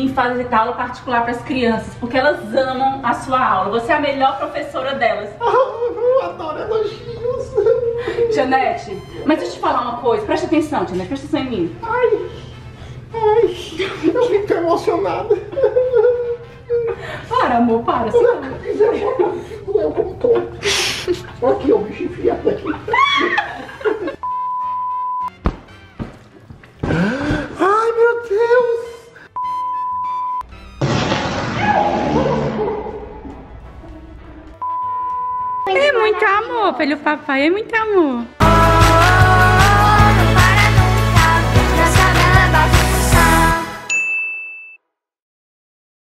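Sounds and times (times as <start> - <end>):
single-pitch beep tone: 24.2 - 25.3, 29.4 - 30.4, 34.6 - 35.8, 43.9 - 44.8
high-pitched electronic ding: 43.9 - 44.8.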